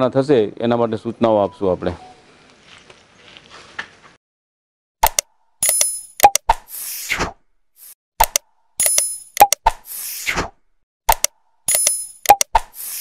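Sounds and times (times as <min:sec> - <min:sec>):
sharp clicks: 0:05.0 - 0:06.6, 0:08.2 - 0:09.8, 0:11.1 - 0:13.0.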